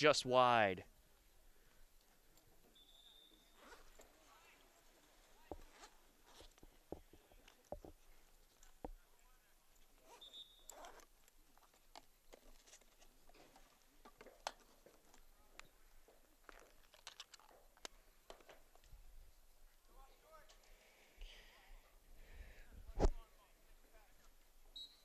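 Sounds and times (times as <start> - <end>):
faint outdoor ambience: 0.0 - 25.0.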